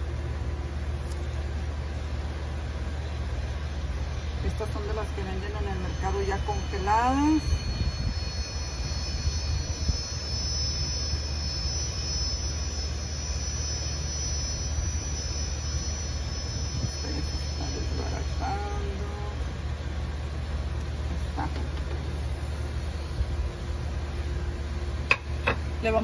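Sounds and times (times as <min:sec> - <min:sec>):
low rumble: 0:01.6 - 0:25.1.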